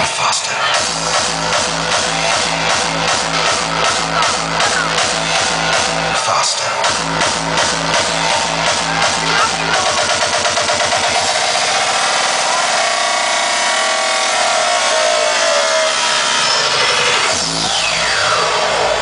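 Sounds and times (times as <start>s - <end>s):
hardstyle dance music: 0.0s - 19.0s
rising synth build-up: 10.0s - 19.0s.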